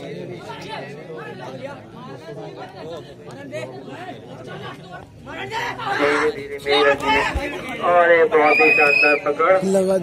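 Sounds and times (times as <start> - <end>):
crowd chatter: 0.0 - 10.0
men's voices: 0.0 - 10.0.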